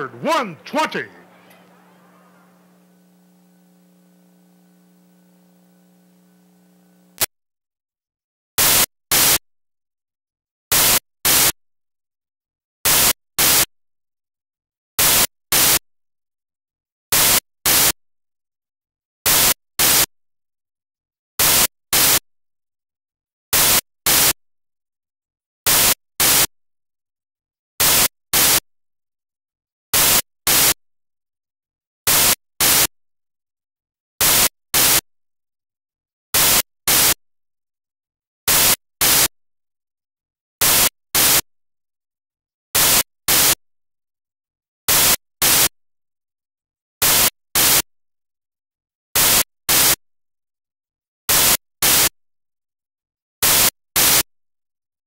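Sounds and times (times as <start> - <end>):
bursts of static hiss: 0.0 - 7.3.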